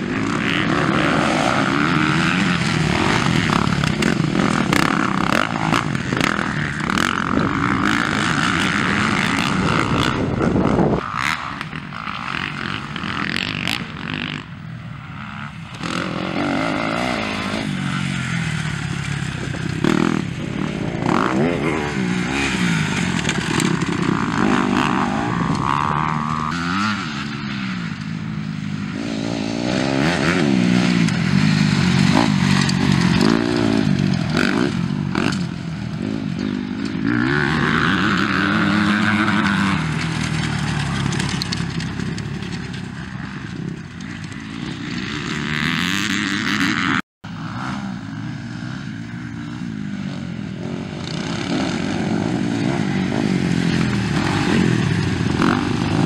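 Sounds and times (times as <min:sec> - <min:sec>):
dirt bike engines revving: 0:00.0 - 0:56.0.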